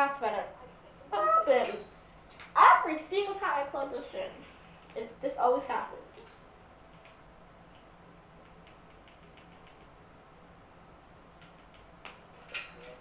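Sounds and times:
faint ticks and clicks: 0:06.1 - 0:10.0, 0:11.4 - 0:12.2.

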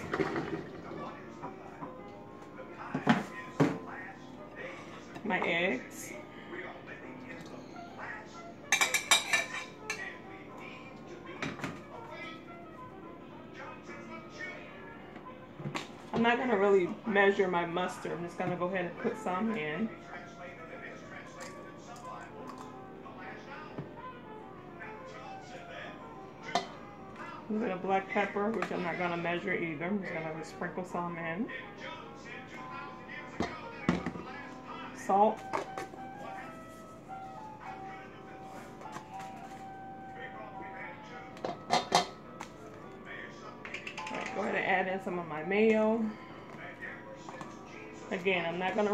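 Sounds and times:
soft background music: 0:00.0 - 0:48.9.

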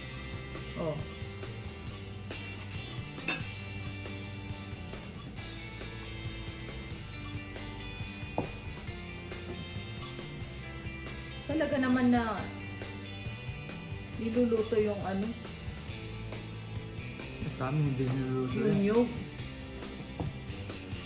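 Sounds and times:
music with held notes: 0:00.0 - 0:21.0
metal spoon clinking on pan: 0:02.3 - 0:04.0.

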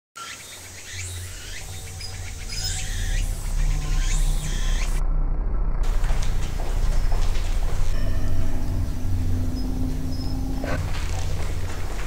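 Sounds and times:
bird chirping: 0:00.2 - 0:05.0, 0:06.8 - 0:12.0
low steady hum: 0:01.2 - 0:12.0.

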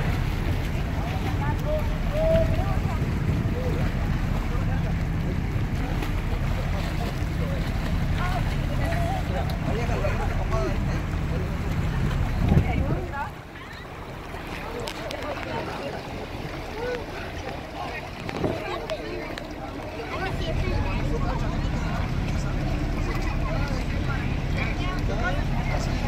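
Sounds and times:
boat engine idling: 0:00.0 - 0:26.0
distant chatter: 0:00.0 - 0:26.0.

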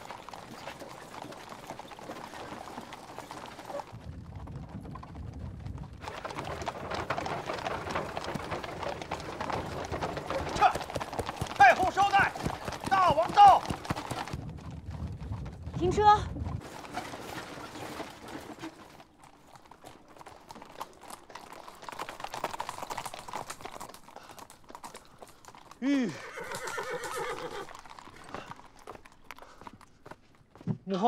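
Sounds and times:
horse hooves on stone: 0:00.0 - 0:31.0.

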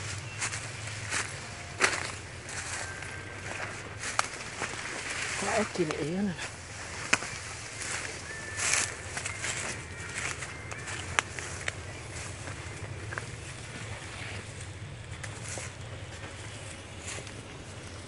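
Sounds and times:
footsteps through dry leaves: 0:00.0 - 0:18.0
steady low hum: 0:00.0 - 0:18.0.

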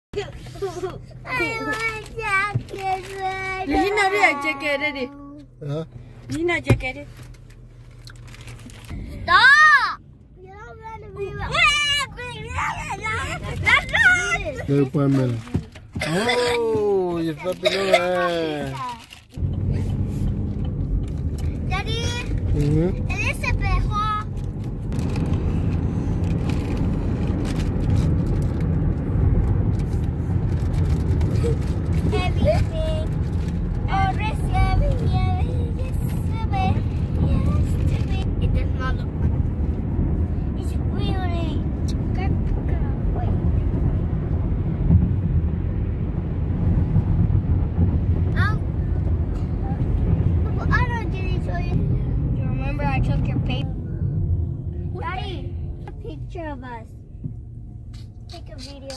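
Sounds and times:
car road and engine noise: 0:00.0 - 0:58.9.

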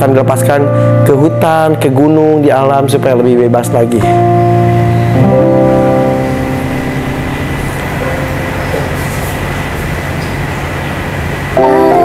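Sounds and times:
digital keyboard organ-like chords: 0:00.0 - 0:12.0.

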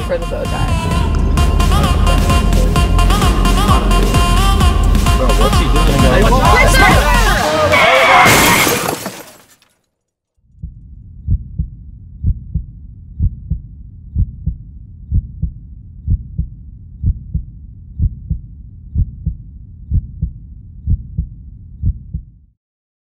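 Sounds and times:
low rumble: 0:10.5 - 0:22.4
heartbeat thumps: 0:10.6 - 0:22.4.

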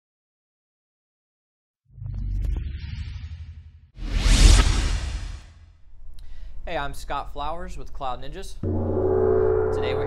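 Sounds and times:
whoosh with deep bass hit: 0:04.0 - 0:05.6.

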